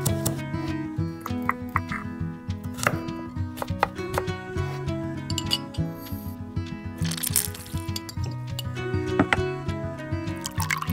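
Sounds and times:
light background music: 0:00.0 - 0:10.9
knife chopping on wooden board: 0:03.6 - 0:04.3.

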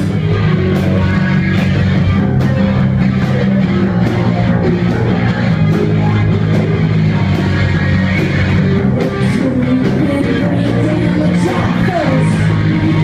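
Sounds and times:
electric guitar: 0:00.0 - 0:13.0.

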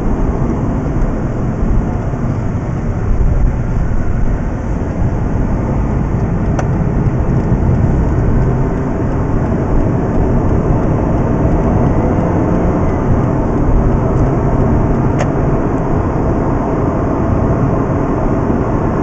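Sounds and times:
engine and road noise drone: 0:00.0 - 0:19.0.

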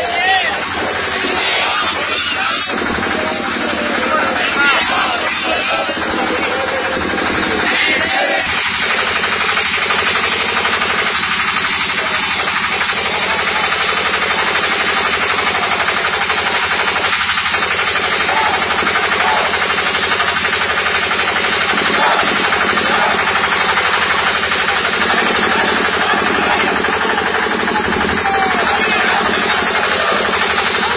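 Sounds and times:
rapid rattle of sharp impacts: 0:08.5 - 0:30.9.

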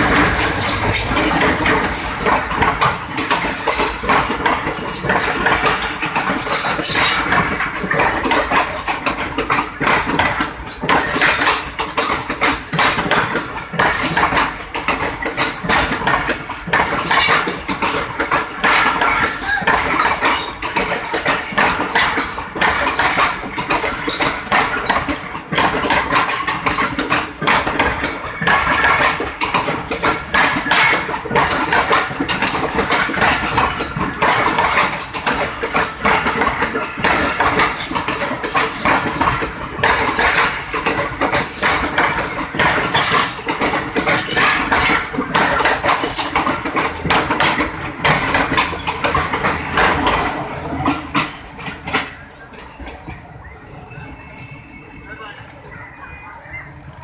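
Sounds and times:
train wheels clattering on rails: 0:00.0 - 0:56.6.

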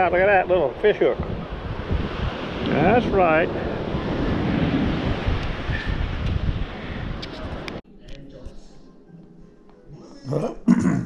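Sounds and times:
ocean surf: 0:00.0 - 0:07.8
wind buffeting microphone: 0:00.0 - 0:07.8.

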